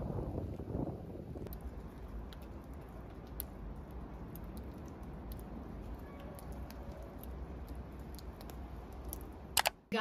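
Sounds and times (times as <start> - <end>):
low rumble: 0.0 - 5.4
sharp click: 9.6 - 9.8.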